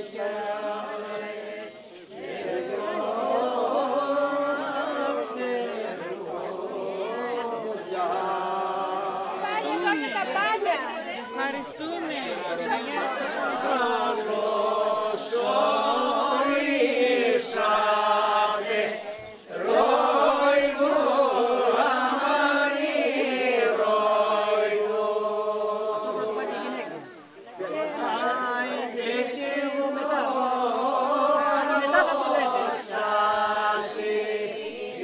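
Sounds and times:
group singing without instruments: 0:00.0 - 0:11.0, 0:12.2 - 0:35.0.

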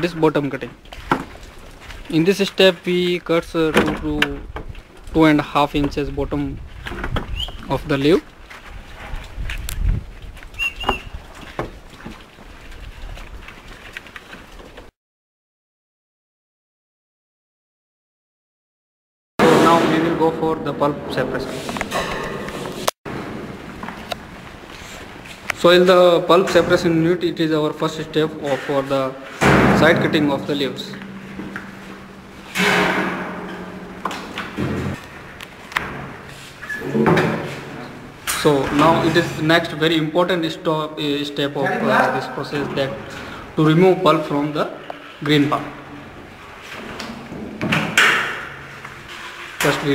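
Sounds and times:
sharp clicks and knocks: 0:29.4 - 0:36.3
steady low hum: 0:29.4 - 0:36.3
metal scraping on steel table: 0:48.9 - 0:49.7.

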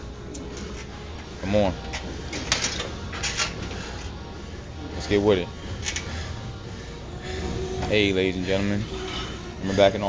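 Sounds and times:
steady low gym hum: 0:00.0 - 0:10.0
hard hissing breaths: 0:05.6 - 0:07.8.

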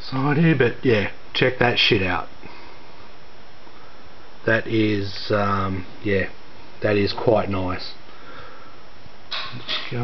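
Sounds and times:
speech: 0:00.0 - 0:02.3, 0:04.4 - 0:08.0, 0:09.6 - 0:10.0
room noise hiss: 0:00.0 - 0:10.0.

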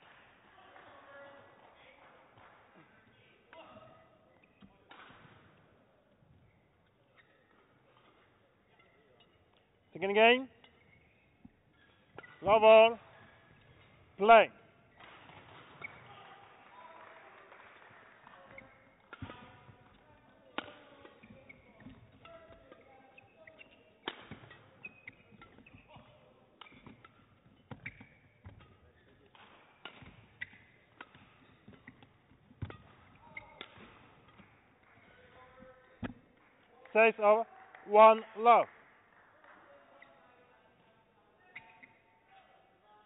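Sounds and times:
shoes squeaking on court: 0:02.8 - 0:14.2, 0:14.9 - 0:16.2, 0:17.8 - 0:36.4, 0:41.4 - 0:42.2
racket striking shuttlecock: 0:18.5 - 0:20.0, 0:20.6 - 0:22.8, 0:23.5 - 0:34.8.

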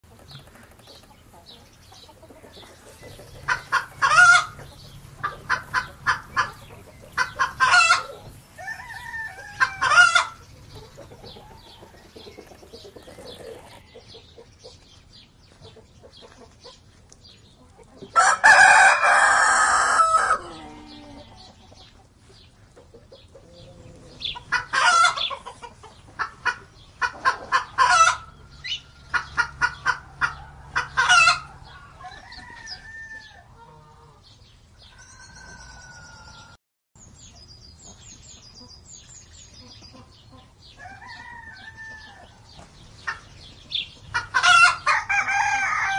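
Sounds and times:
hens clucking: 0:00.1 - 0:14.8, 0:15.5 - 0:34.3, 0:39.6 - 0:45.9
rooster crowing: 0:07.4 - 0:10.4, 0:18.2 - 0:21.3, 0:30.4 - 0:33.5, 0:34.9 - 0:36.6, 0:40.8 - 0:42.4, 0:44.5 - 0:45.9.

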